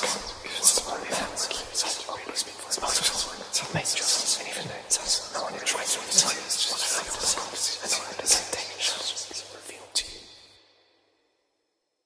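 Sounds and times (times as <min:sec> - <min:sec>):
eerie whispering: 0:00.0 - 0:10.4.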